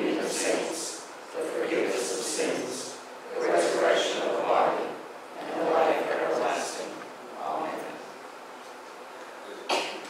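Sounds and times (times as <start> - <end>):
person coughing: 9.6 - 10.0.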